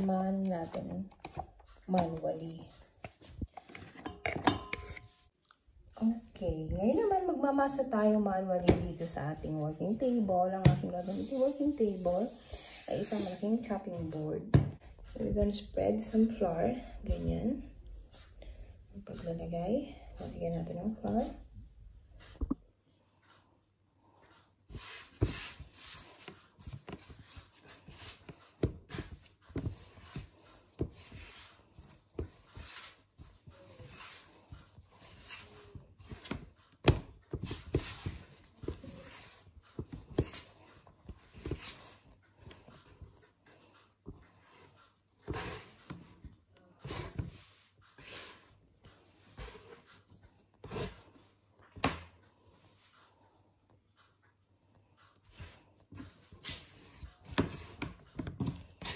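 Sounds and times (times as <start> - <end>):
hands kneading dough: 0.0 - 22.6, 24.1 - 54.3.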